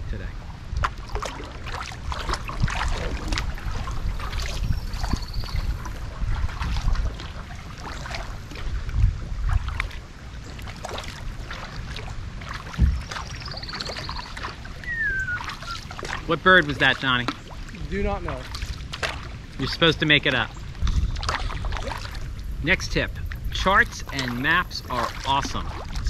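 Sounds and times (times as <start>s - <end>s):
low wind rumble on microphone: 0.0s - 26.0s
water splashing and dripping: 0.7s - 26.0s
kayak paddle strokes: 0.8s - 22.5s, 23.2s - 26.0s
bird calling: 12.9s - 15.9s.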